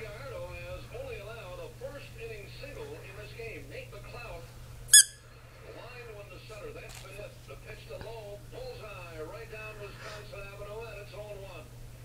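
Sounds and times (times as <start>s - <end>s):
squeaky rubber toy squeak: 4.9s - 5.2s.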